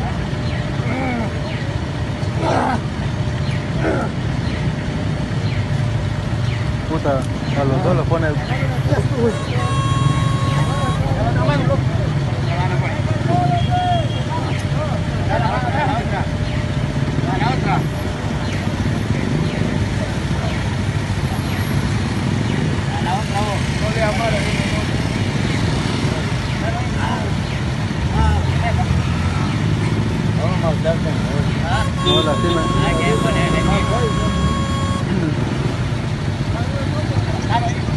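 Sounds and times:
vehicle engines running: 0.0s - 37.9s
people calling out: 9.0s - 11.6s, 31.6s - 35.4s.

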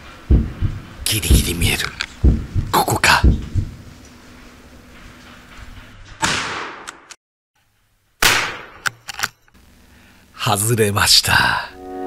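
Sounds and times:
gunshots echoing through woods: 6.2s - 7.1s, 8.2s - 8.9s.

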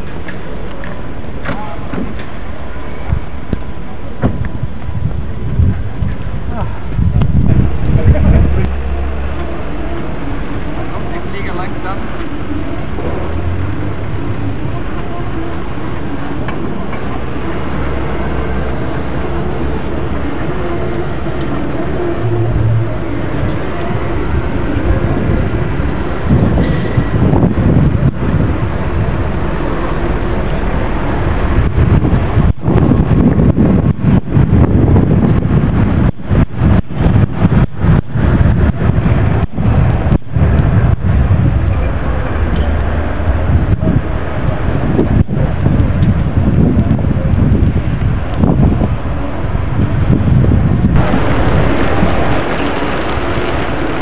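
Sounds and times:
wind buffeting microphone: 0.0s - 54.0s
faint voices: 6.3s - 31.2s.

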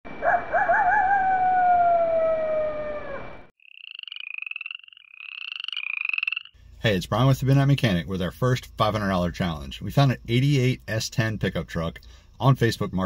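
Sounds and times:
wolf howling: 0.2s - 3.5s
frogs trilling: 3.6s - 7.6s.

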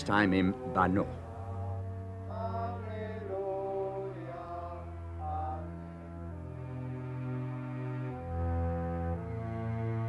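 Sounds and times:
slow chant-like music: 0.0s - 10.0s.

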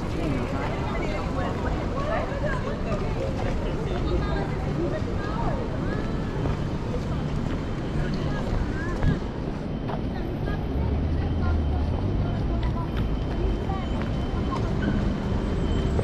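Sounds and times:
passers-by talking indistinctly: 0.0s - 16.0s
traffic: 0.0s - 16.0s
vehicle engine hum: 0.0s - 16.0s.

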